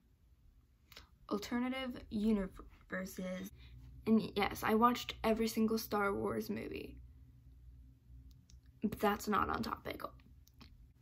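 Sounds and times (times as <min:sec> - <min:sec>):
low room hum: 0:00.0 - 0:11.0
woman speaking: 0:01.3 - 0:07.0, 0:08.8 - 0:10.2.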